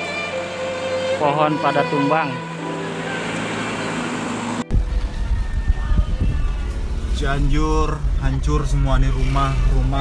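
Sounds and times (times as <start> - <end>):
traffic engines idling: 0.0 - 5.4
loud low rumble: 4.6 - 10.0.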